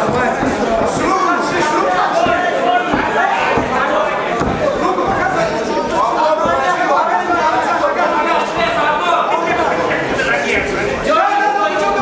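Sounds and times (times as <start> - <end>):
crowd chatter in hall: 0.0 - 12.0.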